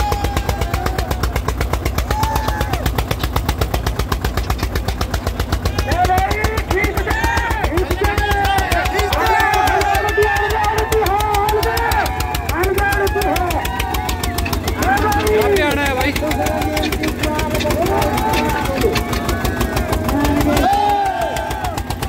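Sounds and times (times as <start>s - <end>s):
crowd talking: 0.0s - 22.0s
tractor diesel engine running: 0.0s - 22.0s.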